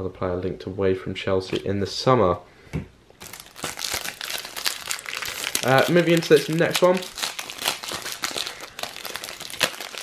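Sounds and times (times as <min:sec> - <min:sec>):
foil wrapper crinkling: 0:03.2 - 0:10.0.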